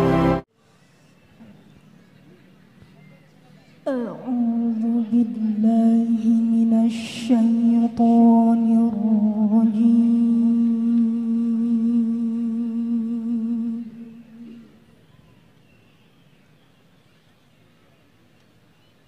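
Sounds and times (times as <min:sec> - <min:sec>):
woman chanting recitation: 0:03.8 - 0:14.9.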